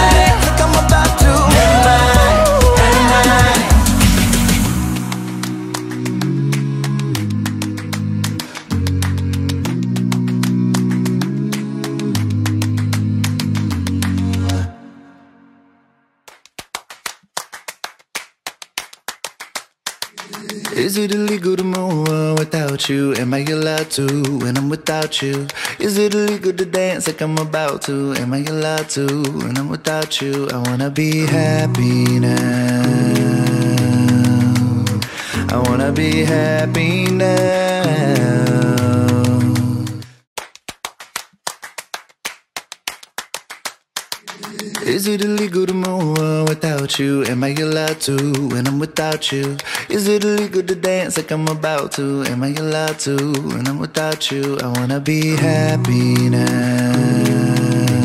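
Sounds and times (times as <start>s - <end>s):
rapid hand claps: 0.0s - 14.7s, 16.2s - 58.0s
sung vocal harmony: 0.0s - 15.7s, 20.2s - 40.2s, 44.3s - 58.0s.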